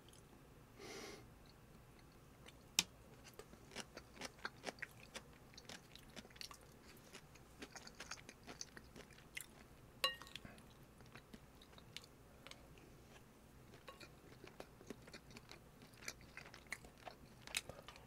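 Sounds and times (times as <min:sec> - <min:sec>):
chewing crunches: 0:02.0 - 0:18.0
spoon clinking on ceramic bowl: 0:10.0 - 0:10.4.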